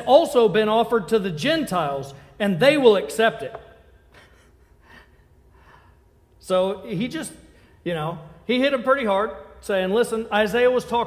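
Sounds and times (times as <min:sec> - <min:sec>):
low room hum: 0:00.0 - 0:11.0
man breathing softly: 0:04.1 - 0:06.2.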